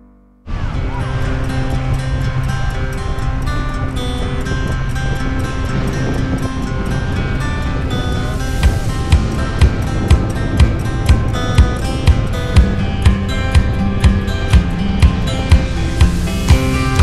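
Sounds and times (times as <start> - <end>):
background music with steady beat: 0.9 - 17.0.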